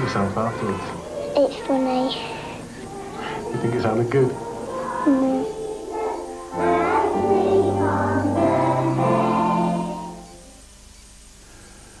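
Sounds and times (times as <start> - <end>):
children's choir singing: 0.0 - 10.6.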